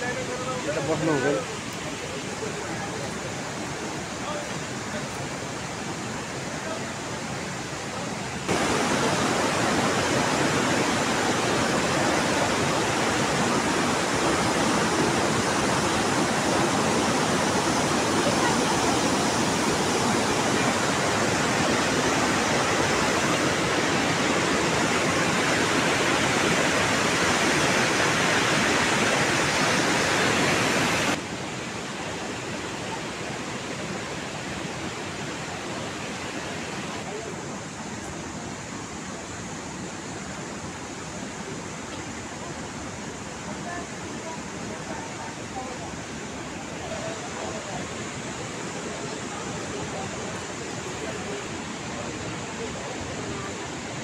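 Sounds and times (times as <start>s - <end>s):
steady rushing noise: 0.0s - 41.9s.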